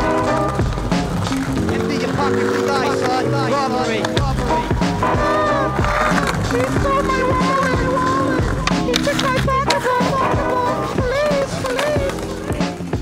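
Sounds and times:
skateboard clacking on concrete: 0.0 - 13.0
skateboard wheels rolling on brick: 0.0 - 13.0.

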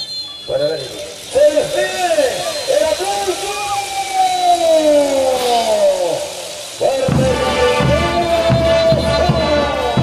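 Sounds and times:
announcer shouting a long call: 0.0 - 10.0.

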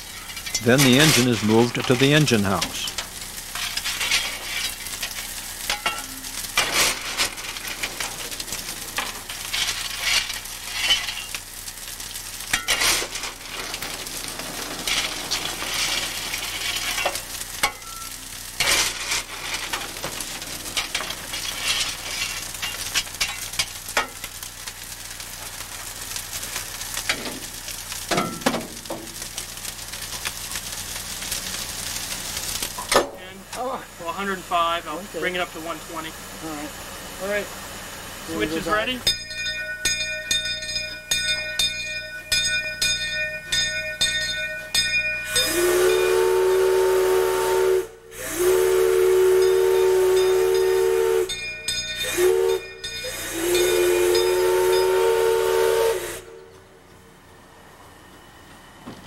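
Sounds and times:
sharp metal clanks and knocks: 0.0 - 8.2, 12.5 - 24.3, 28.1 - 29.2, 39.0 - 45.4, 51.3 - 53.2
fire hissing and crackling: 0.0 - 59.0.

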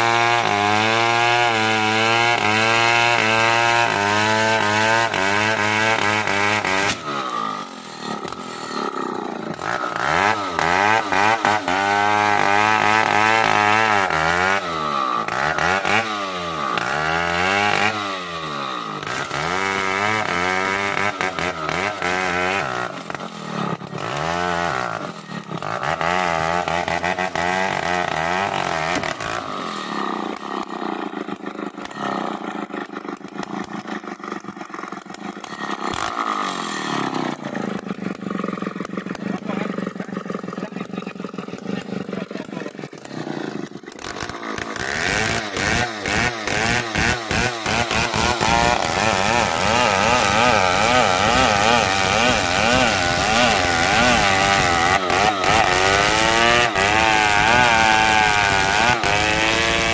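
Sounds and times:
chainsaw sawing through log: 0.0 - 59.9.

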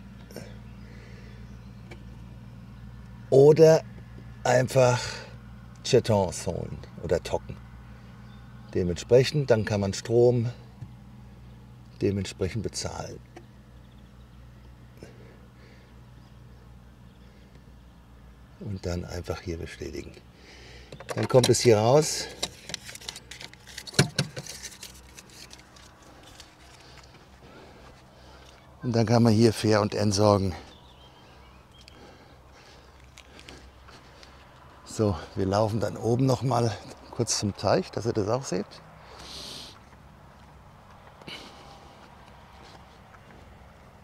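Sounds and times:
footsteps outdoors: 5.4 - 44.0
sharp metallic clicks and rattles: 20.9 - 27.3.

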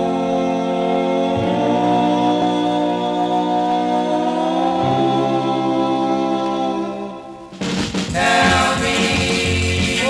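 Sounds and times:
vocal group close harmony: 0.0 - 10.0.

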